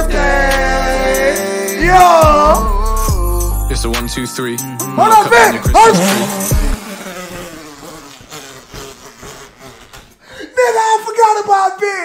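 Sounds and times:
man wheezing laughter: 5.8s - 10.6s.

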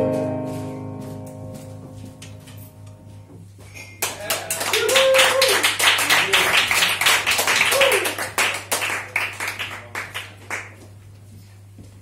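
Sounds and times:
audience clapping: 4.0s - 11.0s.

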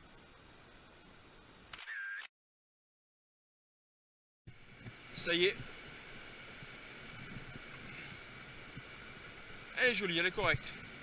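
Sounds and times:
camera shutter with short tone: 1.7s - 2.3s
faint river water rushing: 4.5s - 11.0s.

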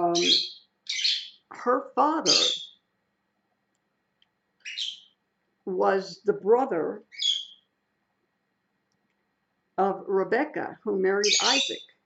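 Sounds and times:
parrot high-pitched call: 0.1s - 1.4s, 2.2s - 2.8s.

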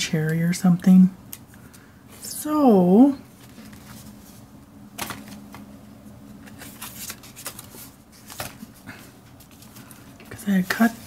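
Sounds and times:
faint steady hum: 0.0s - 11.0s
paper rustling: 3.3s - 5.7s, 6.3s - 11.0s.

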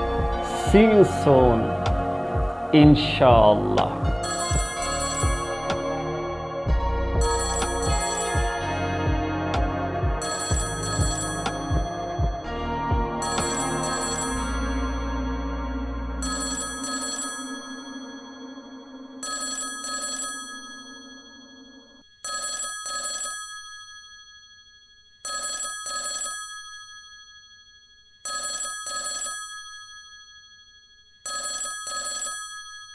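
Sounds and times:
background music: 0.0s - 21.1s
telephone ringing: 1.3s - 6.3s, 7.2s - 12.5s, 13.2s - 15.3s, 16.2s - 24.1s, 25.3s - 27.2s, 28.3s - 30.2s, 31.2s - 32.9s.

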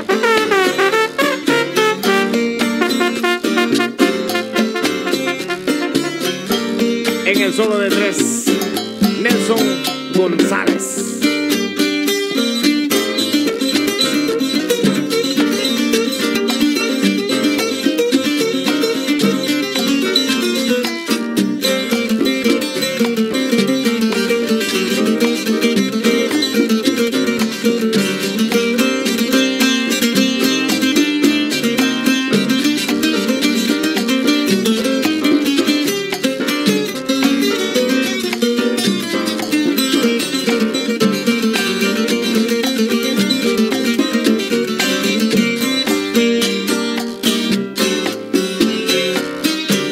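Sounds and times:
band percussion: 0.0s - 49.9s
plucked tres melody: 0.0s - 49.9s.

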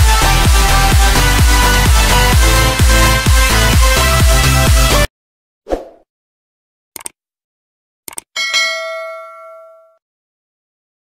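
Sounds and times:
mouse clicks: 7.0s - 7.2s, 8.1s - 8.3s
bright bell ding: 8.4s - 10.0s.

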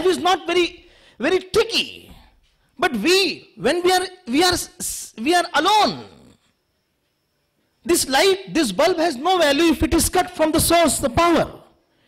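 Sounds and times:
man speaking: 0.0s - 6.4s, 7.8s - 11.7s.

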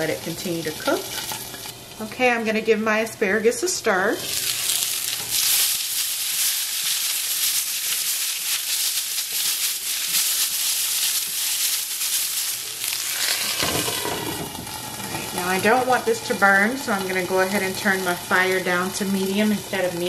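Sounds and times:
asparagus sizzling in hot oil: 0.0s - 1.8s, 4.2s - 20.0s.

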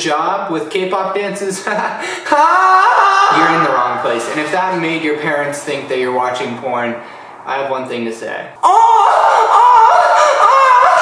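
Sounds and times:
man singing high note: 2.4s - 4.8s.

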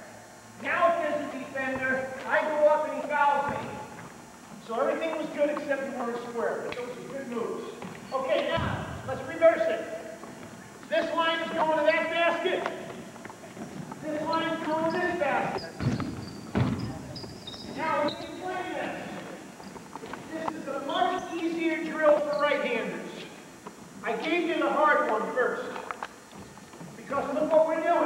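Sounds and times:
people talking: 0.0s - 3.9s, 4.6s - 10.0s, 10.9s - 12.9s, 14.0s - 19.5s, 20.2s - 23.4s, 24.0s - 25.9s, 27.0s - 28.0s
basketballs bouncing on hardwood: 3.4s - 3.8s, 7.8s - 9.0s, 14.6s - 17.8s.

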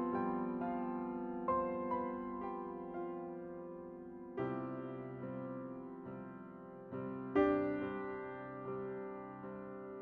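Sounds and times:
soft solo piano: 0.0s - 10.0s.

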